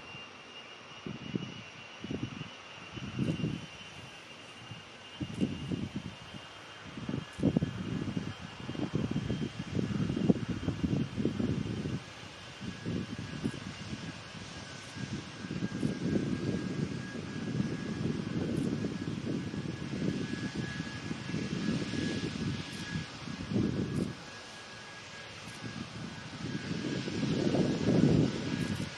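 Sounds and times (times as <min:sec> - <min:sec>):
jet engines whining and rumbling: 0:00.0 - 0:28.9.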